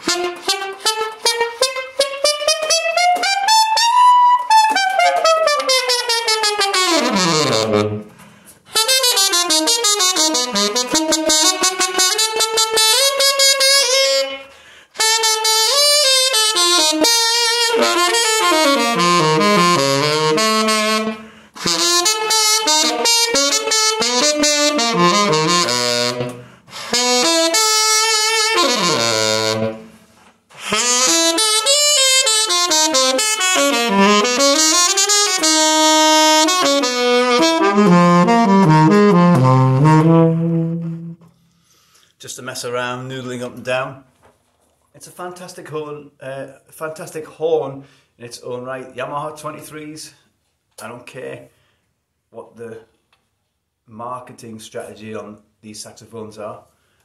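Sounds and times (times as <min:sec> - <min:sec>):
tenor saxophone solo: 0:00.0 - 0:41.4.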